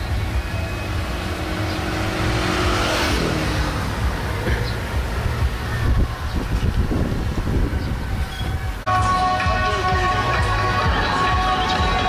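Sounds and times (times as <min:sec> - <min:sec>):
car passing: 0:00.0 - 0:08.8
motor scooter passing: 0:00.1 - 0:08.8
steady low rumble: 0:00.1 - 0:08.9.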